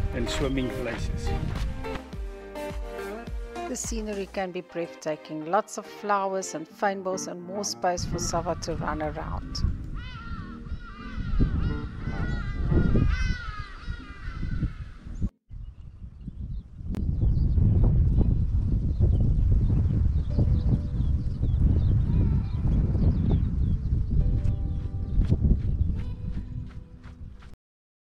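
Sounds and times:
wind rumble on microphone: 0:00.0 - 0:01.9, 0:08.0 - 0:27.6
honking goose-like bird calls: 0:10.0 - 0:14.5.

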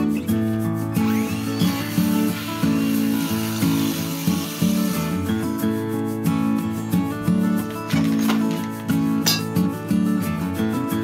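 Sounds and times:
strummed acoustic guitar music: 0:00.0 - 0:11.0
circular saw cutting wood: 0:00.9 - 0:05.5.

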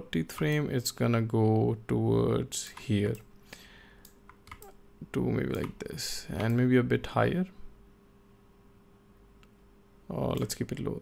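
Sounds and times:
faint steady hum: 0:00.0 - 0:11.0
keyboard and mouse clicks: 0:04.0 - 0:04.8, 0:05.5 - 0:05.8.

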